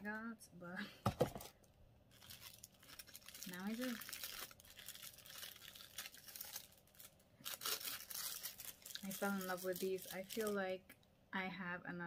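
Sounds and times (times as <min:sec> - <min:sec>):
plastic wrapping crinkling: 0:01.4 - 0:10.7.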